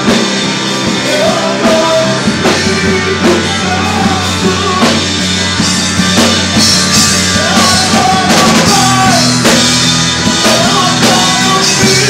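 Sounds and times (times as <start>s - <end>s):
drum kit beating: 0.0s - 12.0s
electric guitars: 0.0s - 12.0s
keyboard: 0.0s - 12.0s.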